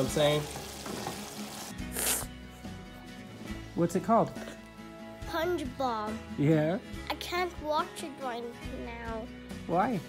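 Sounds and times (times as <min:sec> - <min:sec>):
meat sizzling in a frying pan: 0:00.0 - 0:02.2
quiet background music: 0:00.0 - 0:10.0
brief hiss: 0:01.8 - 0:02.3.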